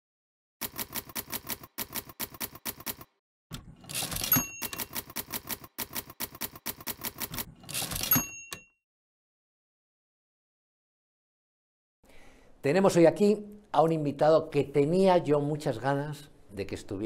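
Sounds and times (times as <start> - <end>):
typewriter keys clacking: 0.6 - 3.1, 3.9 - 8.6
typewriter carriage return sweep: 3.8 - 8.3
typewriter bell ring: 3.9 - 5.2, 7.7 - 8.8.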